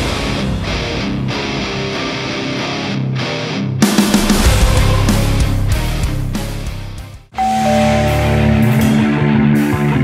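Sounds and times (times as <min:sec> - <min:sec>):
rock music: 0:00.0 - 0:10.0.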